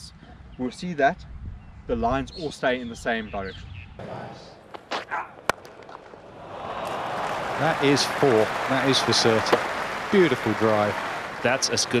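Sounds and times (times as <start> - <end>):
cricket bat striking ball: 4.7 - 7.5, 9.3 - 10.0
stadium crowd murmur: 6.2 - 12.0.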